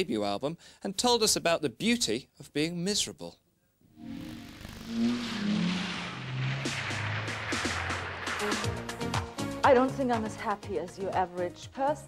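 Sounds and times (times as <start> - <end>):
descending synthesizer swoop: 3.9 - 9.1
fast electronic pulse: 3.9 - 9.2.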